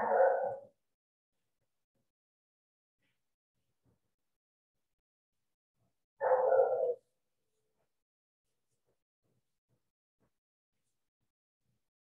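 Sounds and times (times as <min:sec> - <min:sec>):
animal-like call: 0:06.2 - 0:07.1.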